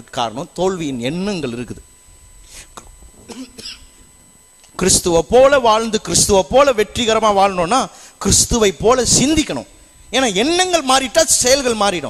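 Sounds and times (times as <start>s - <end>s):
man clearing throat: 3.2s - 4.0s
man preaching loudly: 4.8s - 12.0s.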